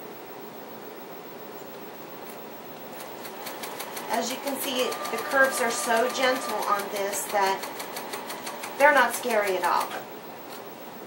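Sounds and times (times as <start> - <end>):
sewing machine stitching: 3.0 - 10.0.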